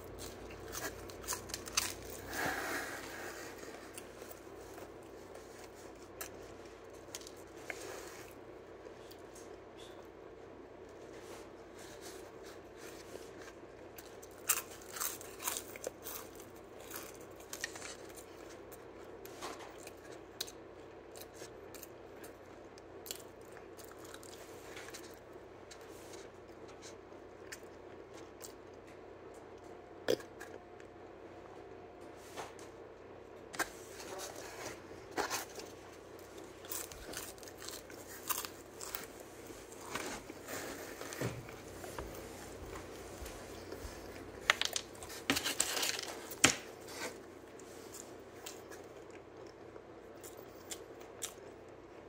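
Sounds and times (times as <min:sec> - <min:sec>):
crunchy pizza chewing: 0:00.0 - 0:52.0
crisp pizza crust crunches: 0:42.7 - 0:47.2.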